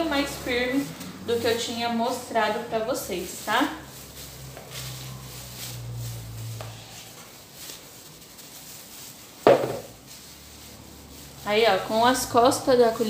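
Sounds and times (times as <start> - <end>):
plastic wrap rustling: 0.0 - 13.0.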